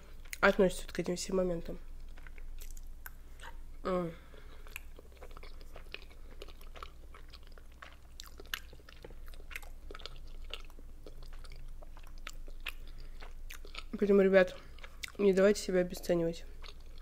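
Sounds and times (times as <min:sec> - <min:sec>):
wet chewing sounds: 0:01.9 - 0:03.6, 0:04.2 - 0:17.0.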